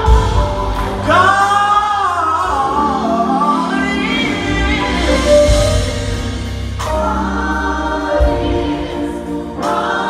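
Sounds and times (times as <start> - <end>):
steady bass: 0.0 - 9.9
gospel choir singing: 0.0 - 10.0.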